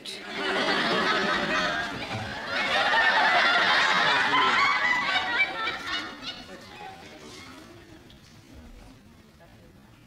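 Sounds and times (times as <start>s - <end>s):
audience laughing loudly: 0.2s - 7.0s.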